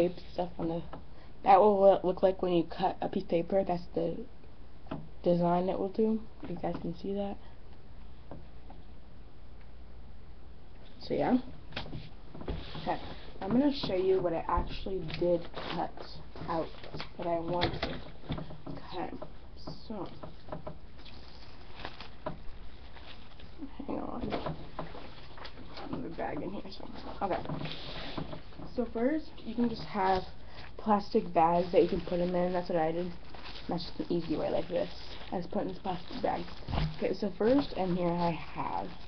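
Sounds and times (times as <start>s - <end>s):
plastic bags rustling: 11.6s - 19.3s, 19.9s - 39.0s
light clicks and knocks: 16.3s - 21.1s.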